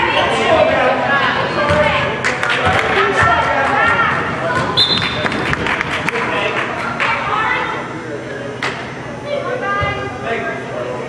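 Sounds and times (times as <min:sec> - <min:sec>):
referee's whistle blast: 0:04.8 - 0:05.2.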